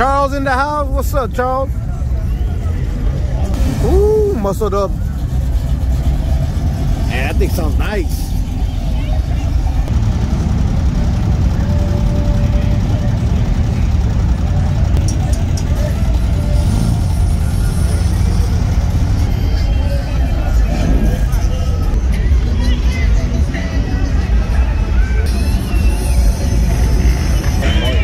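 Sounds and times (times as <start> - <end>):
car engines rumbling: 0.0 - 28.0
crowd voices: 0.0 - 28.0
music: 11.7 - 28.0.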